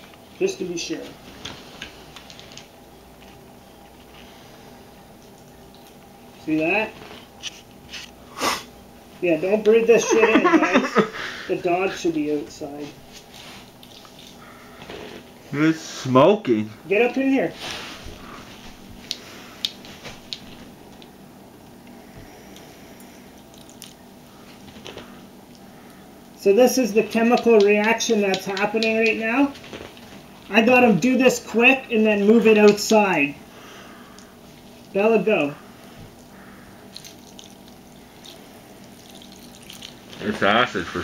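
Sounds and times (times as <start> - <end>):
liquid splashing and dripping: 23.4 - 24.0, 36.9 - 40.2
faint chemical fizz: 36.8 - 41.0
liquid poured in thin stream: 38.8 - 40.0.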